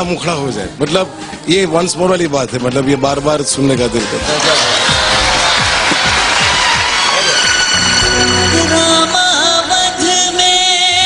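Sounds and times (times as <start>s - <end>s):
background music: 0.0s - 11.0s
audience applauding: 4.0s - 9.1s.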